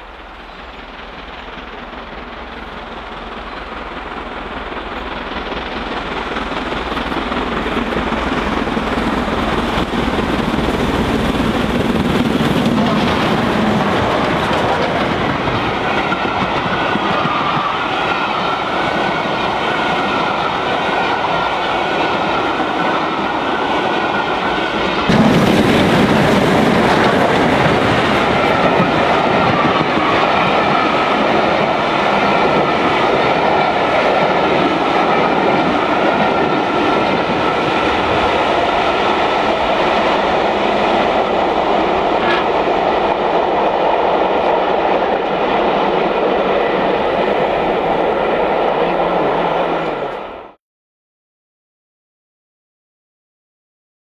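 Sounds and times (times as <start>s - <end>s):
train rail roar: 0.0s - 50.6s.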